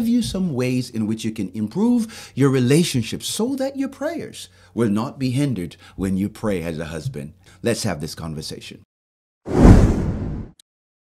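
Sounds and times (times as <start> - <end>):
deep low boom: 9.5 - 10.5
whoosh sound effect: 9.5 - 10.6.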